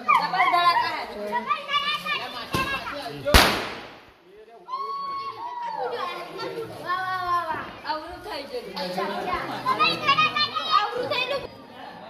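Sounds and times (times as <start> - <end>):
firecracker bang: 2.5 - 4.3
children shouting excitedly: 4.7 - 6.5.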